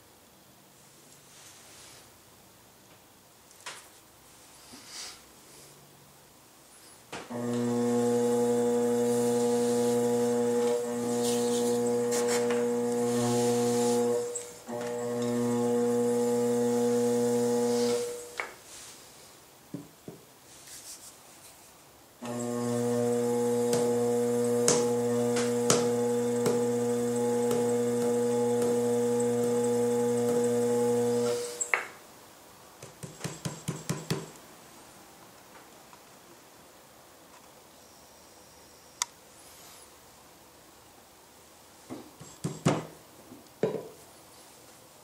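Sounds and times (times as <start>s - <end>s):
loud steady hum: 22.3s - 31.6s.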